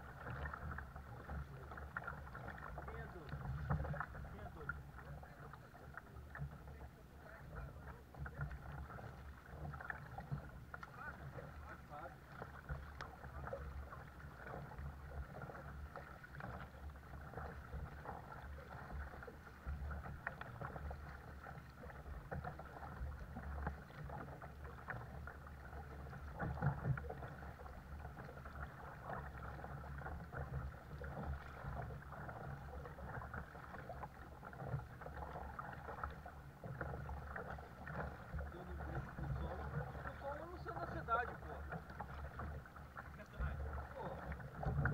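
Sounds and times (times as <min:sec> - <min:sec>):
paddle strokes through water: 0:00.0 - 0:44.9
water lapping against hull: 0:00.0 - 0:44.9.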